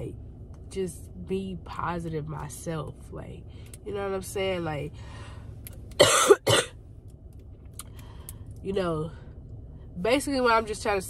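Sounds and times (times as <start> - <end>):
woman coughing: 6.0 - 6.7.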